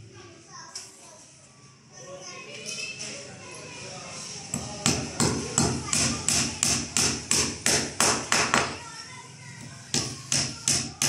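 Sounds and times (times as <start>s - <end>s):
hammer striking nail into wood: 4.6s - 8.8s, 10.0s - 11.0s.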